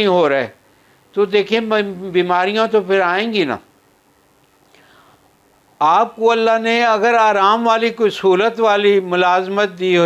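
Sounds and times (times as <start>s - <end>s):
man speaking: 0.0s - 3.7s, 5.8s - 10.0s
faint breath: 0.6s - 1.1s, 4.6s - 5.4s.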